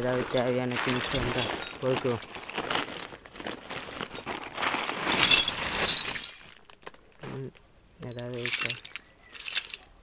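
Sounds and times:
scrap metal parts clattering: 0.0s - 7.1s, 8.1s - 10.0s.

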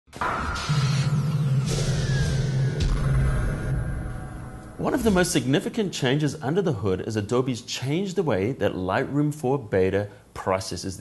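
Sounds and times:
low rumbling drone: 0.6s - 5.5s.

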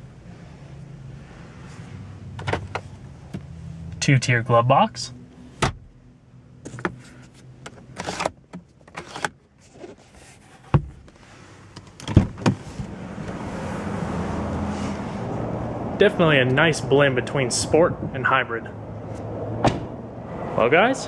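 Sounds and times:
steady hum from outside: 0.0s - 21.0s
car door opening: 19.6s - 20.0s.

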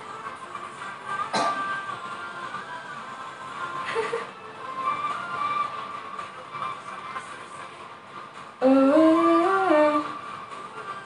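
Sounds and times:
faint background music: 0.0s - 11.0s
woman humming a tune: 8.6s - 10.2s.

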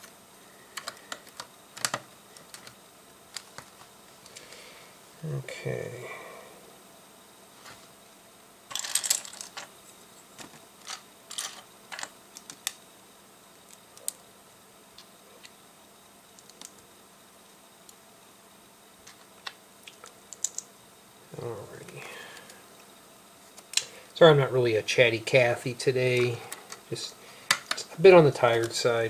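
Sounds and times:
plastic bricks clicking and rattling: 10.8s - 12.8s.

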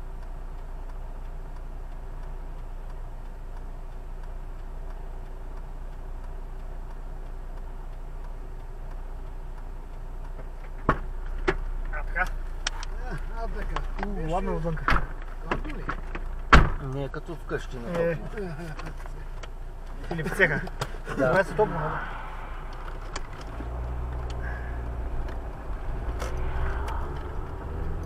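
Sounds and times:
car engine idling: 0.0s - 28.0s
sharp clicks: 0.1s - 28.0s
small clicks and knocks: 9.9s - 17.2s.

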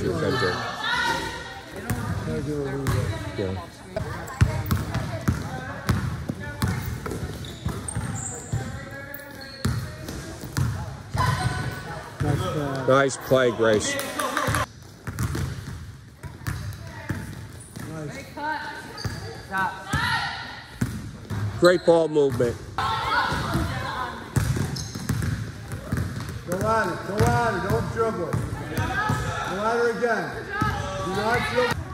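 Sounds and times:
basketball bouncing on gym floor: 1.8s - 3.3s, 4.0s - 12.7s, 14.5s - 18.2s, 20.8s - 21.6s, 22.3s - 29.3s.

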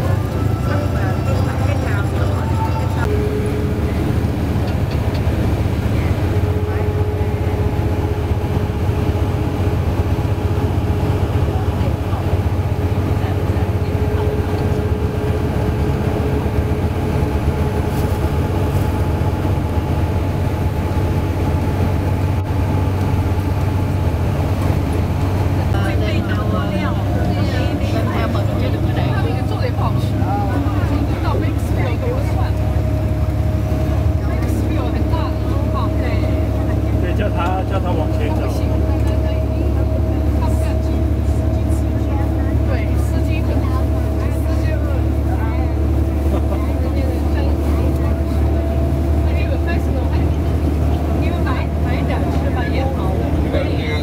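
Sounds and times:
faint passenger talk: 0.0s - 20.3s, 25.2s - 54.0s
coach engine and tyres rumbling: 0.0s - 54.0s.

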